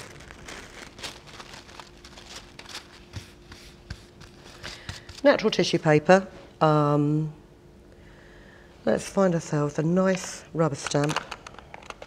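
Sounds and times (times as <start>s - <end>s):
tissue paper crinkling: 0.0s - 5.2s.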